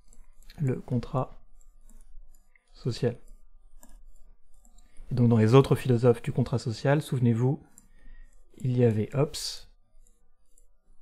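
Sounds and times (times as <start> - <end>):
stylus ticking on tablet screen: 0.0 - 11.0
person speaking: 0.1 - 1.6, 2.7 - 3.5, 5.0 - 7.8, 8.5 - 9.8.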